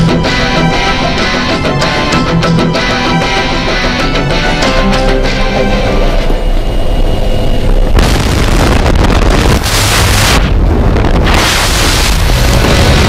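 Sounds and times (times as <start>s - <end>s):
aircraft engine and propeller drone: 0.0s - 11.2s
wind buffeting microphone: 6.6s - 13.0s.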